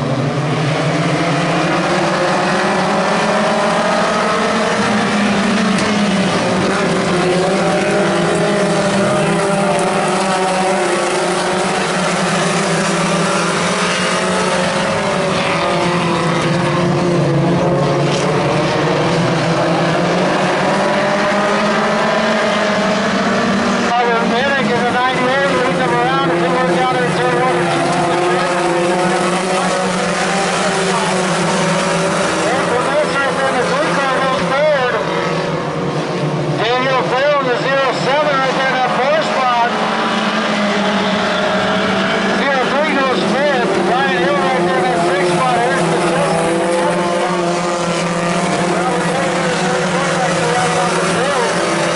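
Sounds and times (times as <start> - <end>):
race car engines: 0.0 - 51.9.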